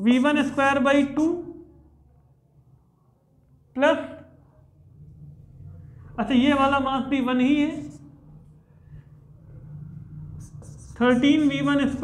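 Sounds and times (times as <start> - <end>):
low steady hum: 1.4 - 12.0
marker writing on whiteboard: 7.6 - 9.0, 10.1 - 12.0.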